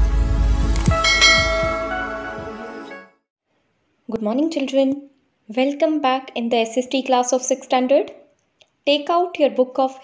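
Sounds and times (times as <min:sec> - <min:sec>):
bell chime: 0:00.9 - 0:02.3.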